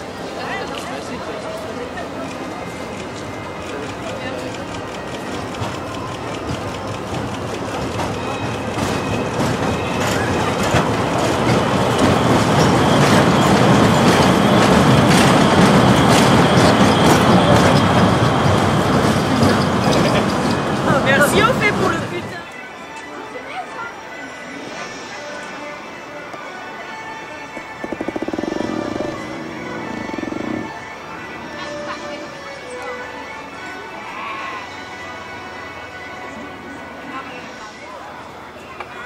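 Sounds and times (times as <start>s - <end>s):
wheels clacking over track: 27.5s - 32.3s.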